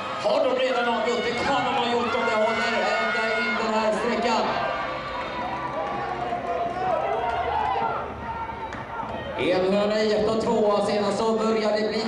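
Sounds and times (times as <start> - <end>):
stadium crowd hubbub: 0.0 - 12.0.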